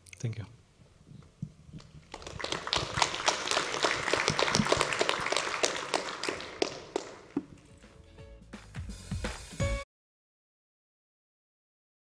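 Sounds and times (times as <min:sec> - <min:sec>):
audience applauding: 0:02.1 - 0:07.6.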